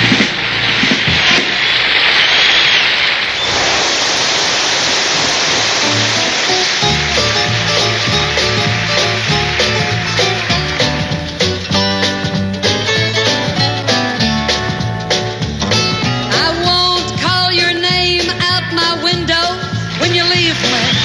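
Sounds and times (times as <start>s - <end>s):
gliding tone: 0.0s - 12.4s
hiss-like wash of noise: 0.0s - 13.3s, 19.6s - 21.0s
country band instrumental: 5.8s - 21.0s.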